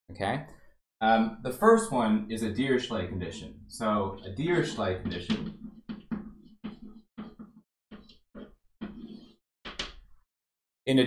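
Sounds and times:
chalk strokes on blackboard: 0:03.8 - 0:09.4.

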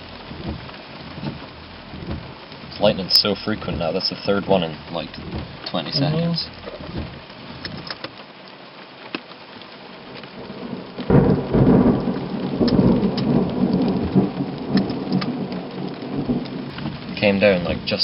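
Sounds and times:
thunderclap rumbling: 0:00.0 - 0:07.9, 0:10.0 - 0:18.0
heavy rain on car roof: 0:00.0 - 0:18.0
raindrops ticking: 0:00.0 - 0:18.0.

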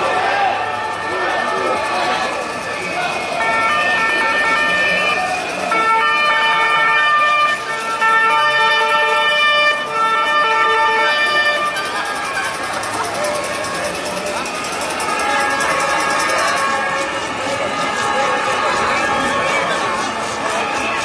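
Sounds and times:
loud horn blasts: 0:00.0 - 0:21.0
marching crowd: 0:00.0 - 0:21.0.

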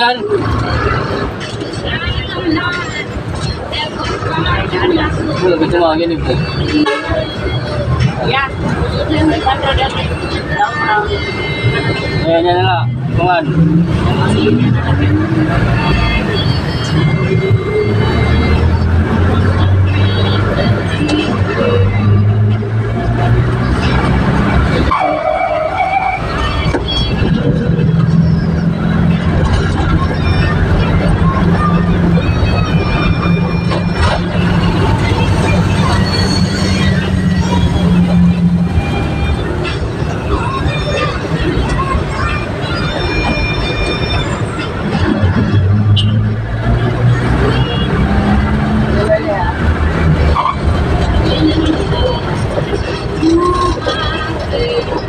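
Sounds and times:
engine droning: 0:00.0 - 0:55.0
road and traffic noise: 0:00.0 - 0:55.0.

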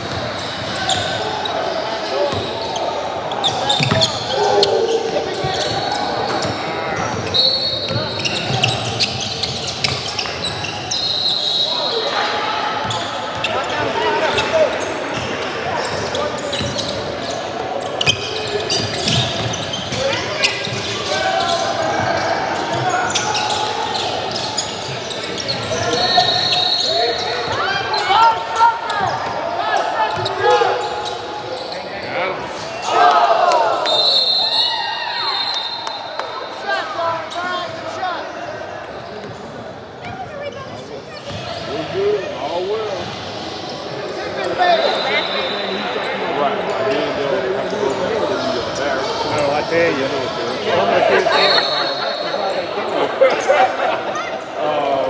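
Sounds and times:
players' voices: 0:00.0 - 0:55.0
high whistle tone: 0:33.8 - 0:36.2.

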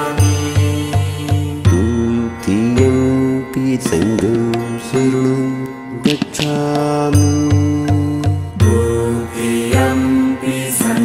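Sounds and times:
devotional chant singing: 0:00.0 - 0:11.0
instrumental backing with bass: 0:00.0 - 0:11.0.

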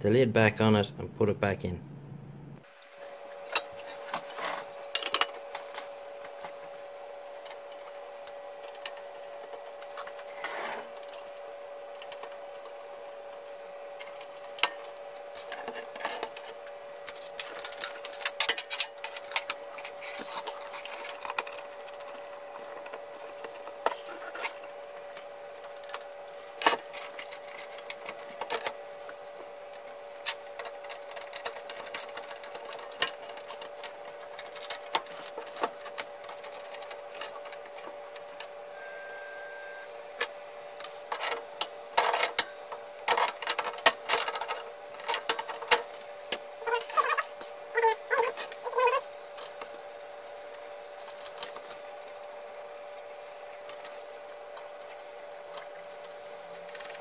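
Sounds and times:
short high beep: 0:38.7 - 0:39.9.

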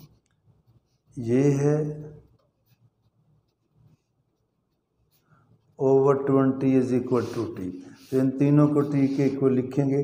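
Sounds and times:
pen scratching on paper: 0:00.0 - 0:09.8.

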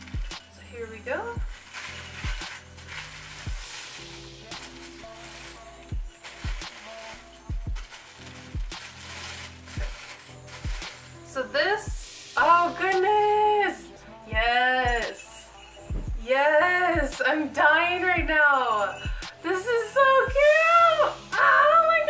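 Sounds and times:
wrapping paper crinkling and tearing: 0:00.0 - 0:11.3
background music with low beat: 0:00.0 - 0:19.5, 0:20.3 - 0:21.4.

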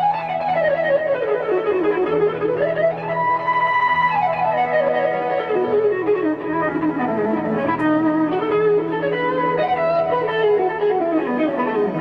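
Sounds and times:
electric guitar solo: 0:00.0 - 0:12.0.

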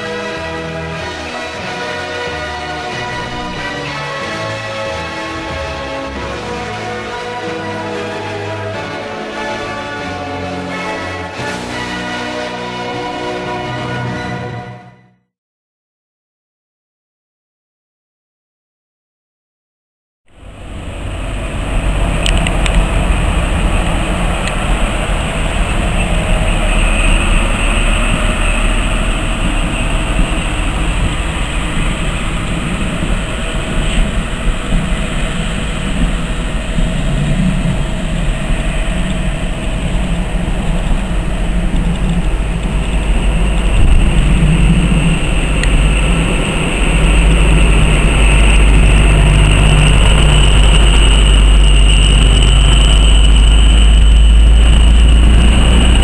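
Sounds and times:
diesel train rumbling past: 0:00.0 - 0:15.1, 0:20.3 - 0:56.0.

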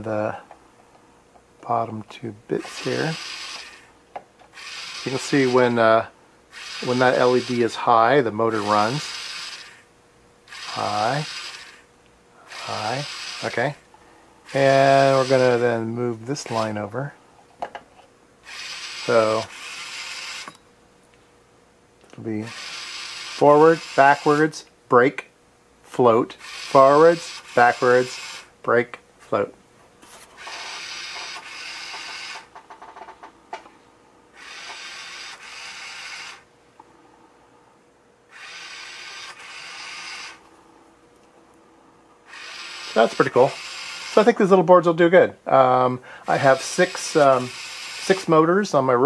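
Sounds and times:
small motor whirring: 0:02.6 - 0:05.9, 0:06.5 - 0:07.8, 0:08.5 - 0:09.9, 0:10.5 - 0:13.8, 0:14.5 - 0:15.8, 0:18.4 - 0:20.6, 0:22.4 - 0:24.6, 0:26.4 - 0:28.5, 0:30.2 - 0:32.5, 0:34.4 - 0:36.5, 0:38.3 - 0:40.4, 0:42.2 - 0:44.4, 0:46.2 - 0:48.3.

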